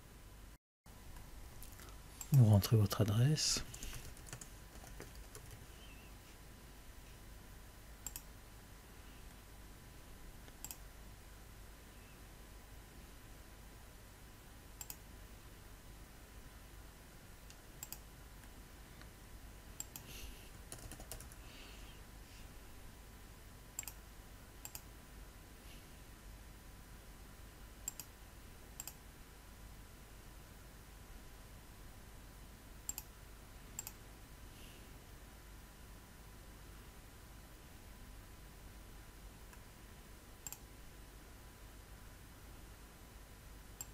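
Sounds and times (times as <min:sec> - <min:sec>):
faint steady hiss: 0:00.0 - 0:43.9
computer mouse clicks: 0:03.7 - 0:05.7, 0:08.0 - 0:08.3, 0:10.4 - 0:10.8, 0:14.8 - 0:15.0, 0:17.4 - 0:19.1, 0:19.8 - 0:20.1, 0:20.7 - 0:21.4, 0:23.8 - 0:24.0, 0:24.6 - 0:24.9, 0:27.8 - 0:28.1, 0:28.8 - 0:29.0, 0:32.9 - 0:33.1, 0:33.8 - 0:34.0, 0:40.4 - 0:40.7.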